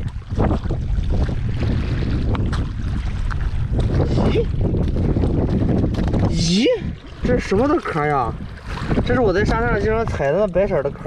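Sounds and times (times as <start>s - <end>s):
waves washing onto shore: 0.0s - 11.0s
wind buffeting microphone: 0.0s - 11.0s.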